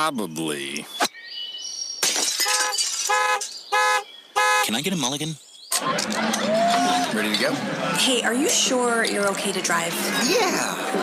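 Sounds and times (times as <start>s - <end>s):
glass shattering: 2.0s - 3.7s
car alarm beeping: 3.1s - 4.8s.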